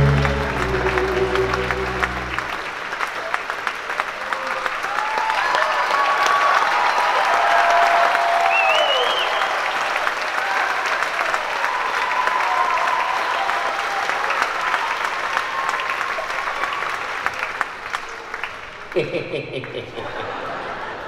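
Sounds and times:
audience applauding: 0.0s - 21.0s.

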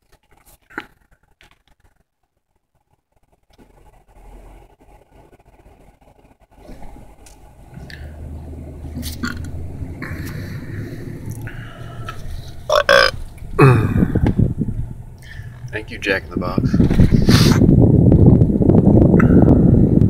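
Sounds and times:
car road noise from inside: 3.6s - 20.0s
person burping loudly: 12.7s - 14.4s.

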